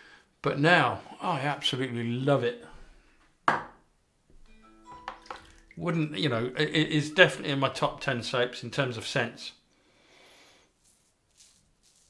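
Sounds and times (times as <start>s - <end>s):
sharp knock of hard object: 3.5s - 3.8s
chime-like tones: 4.5s - 7.8s.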